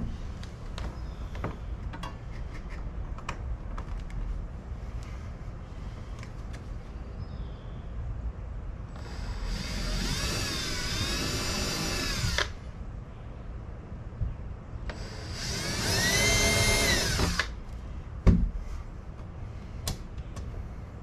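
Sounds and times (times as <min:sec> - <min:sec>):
cordless drill drilling into metal: 0:09.0 - 0:12.6, 0:14.9 - 0:17.6.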